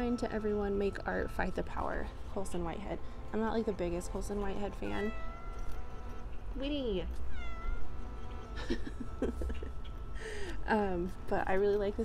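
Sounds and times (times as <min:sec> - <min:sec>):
cat meowing: 0:07.2 - 0:08.0.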